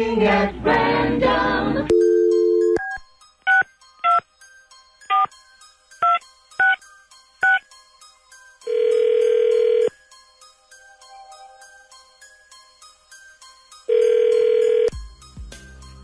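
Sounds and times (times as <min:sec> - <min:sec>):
phone ringback tone: 0:01.9 - 0:04.2, 0:05.1 - 0:05.4, 0:08.6 - 0:10.0, 0:13.9 - 0:15.0
phone keypad beeps: 0:05.1 - 0:05.3, 0:06.0 - 0:06.8, 0:07.4 - 0:07.6.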